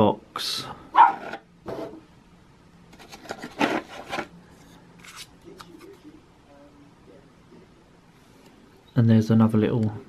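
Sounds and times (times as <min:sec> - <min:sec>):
hands scraping cardboard packaging: 0:03.0 - 0:04.3.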